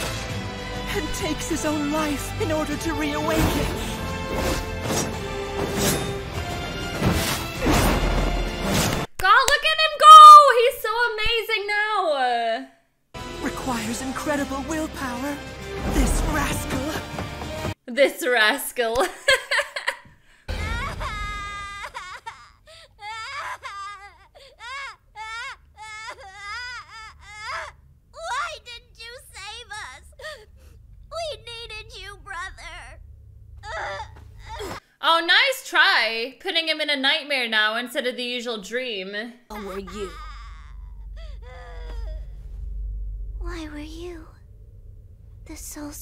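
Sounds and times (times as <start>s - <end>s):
dramatic film music: 0.0s - 9.1s, 13.2s - 17.8s, 39.5s - 46.0s
high voice whimpering and crying: 20.5s - 33.0s, 33.6s - 34.8s, 39.5s - 42.4s.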